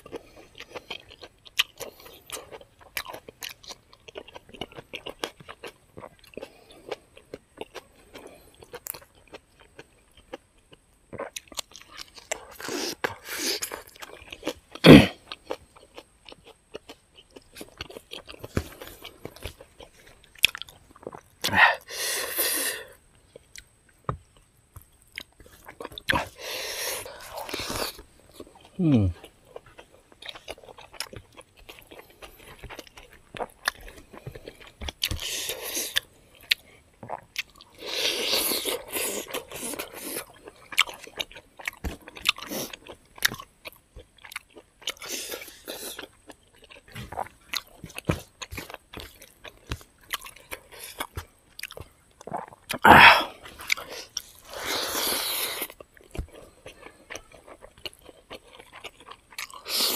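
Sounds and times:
chewing food: 0.0s - 59.9s
mouth clicks and crunches: 0.0s - 59.9s.

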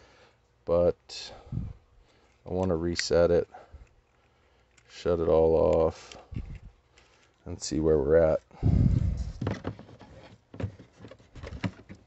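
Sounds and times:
small knocks and rustles: 9.1s - 12.0s.

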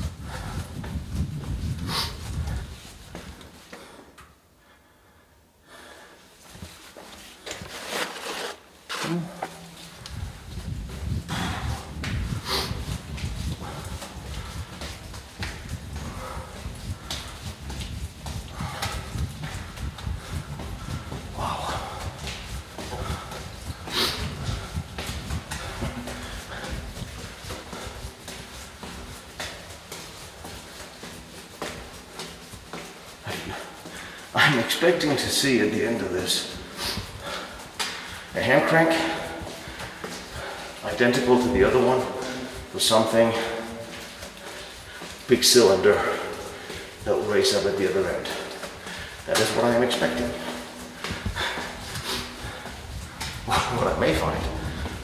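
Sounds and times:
breathing close to microphone: 0.0s - 7.1s, 9.5s - 32.4s, 33.2s - 34.4s, 36.4s - 42.7s, 43.4s - 45.3s, 45.9s - 47.1s, 48.3s - 49.4s, 50.0s - 53.8s
footsteps on debris-strewn floor: 5.8s - 55.0s.

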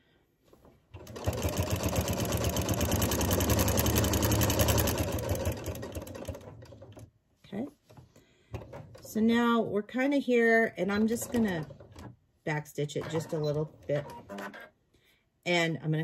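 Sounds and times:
sewing machine stitching: 0.9s - 7.1s, 10.9s - 12.1s, 13.0s - 14.7s.

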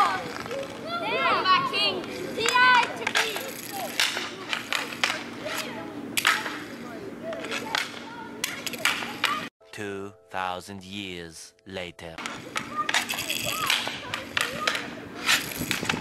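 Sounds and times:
hockey sticks cracking: 0.0s - 0.9s, 2.0s - 9.5s, 12.2s - 16.0s.

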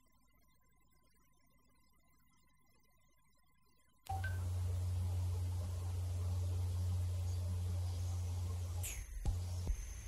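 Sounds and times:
steady low hum: 3.9s - 10.0s.

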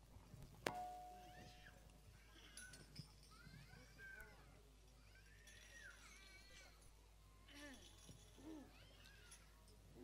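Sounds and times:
ringing tone from a strike: 0.7s - 1.4s.

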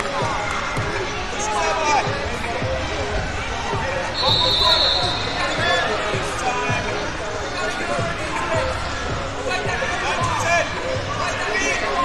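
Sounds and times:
overlapping voices and calls: 0.0s - 12.0s
high whistle blown: 4.2s - 5.4s.

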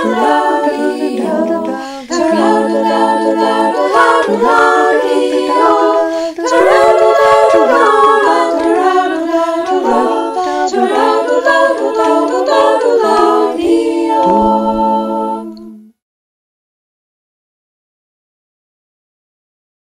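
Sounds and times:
women singing in harmony: 0.0s - 15.9s.

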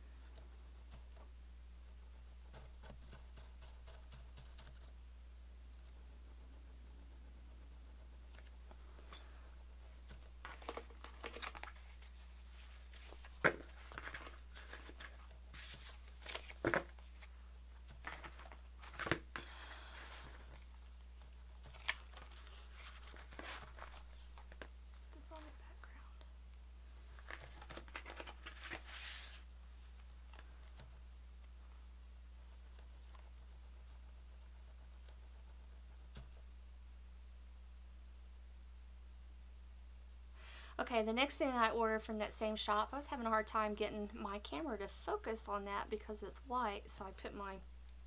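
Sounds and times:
faint low hum: 0.0s - 48.0s
paper rustling: 10.0s - 25.6s, 27.0s - 30.9s.

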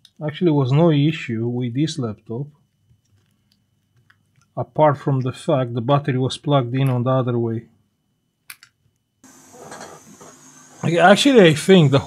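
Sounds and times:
steady hiss: 9.2s - 12.0s.

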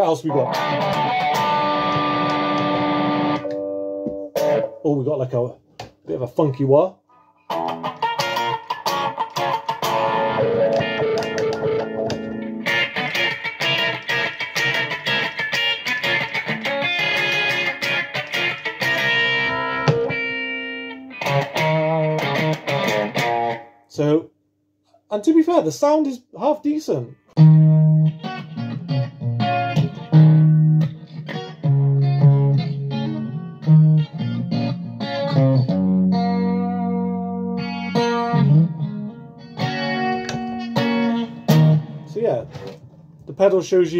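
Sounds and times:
electric guitar notes and chords: 0.0s - 4.8s, 7.1s - 23.8s, 27.4s - 43.3s.

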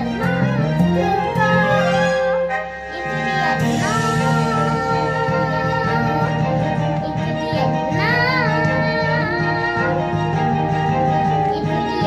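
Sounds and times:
girl singing: 0.0s - 2.3s, 2.9s - 12.0s
instrumental accompaniment: 0.0s - 12.0s.

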